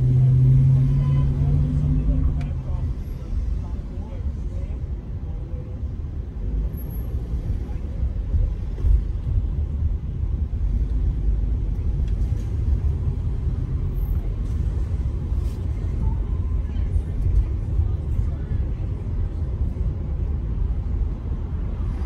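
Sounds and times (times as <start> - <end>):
car driving rumble: 0.0 - 22.0.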